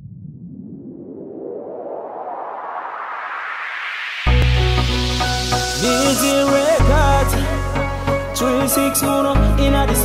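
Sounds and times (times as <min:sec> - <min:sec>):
synthesized noise riser whoosh: 0:00.0 - 0:08.1.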